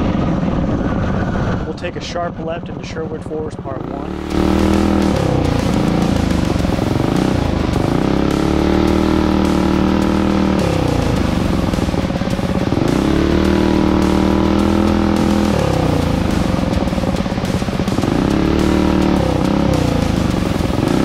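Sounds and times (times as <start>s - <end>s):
music: 2.0s - 21.0s
minibike engine revving: 3.8s - 21.0s.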